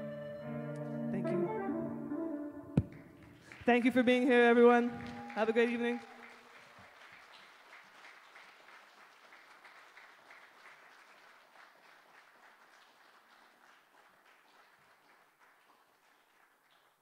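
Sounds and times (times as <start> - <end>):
faint audience applause: 2.9 - 17.0.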